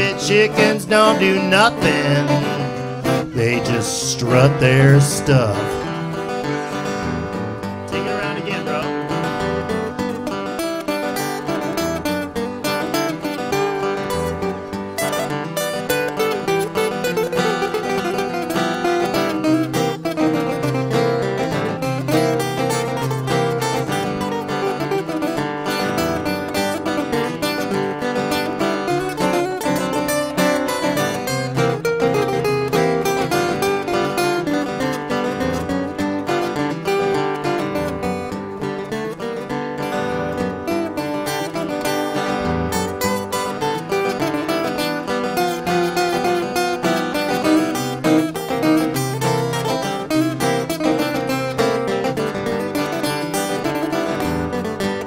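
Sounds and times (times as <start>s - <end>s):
acoustic guitars playing: 0.0s - 55.0s.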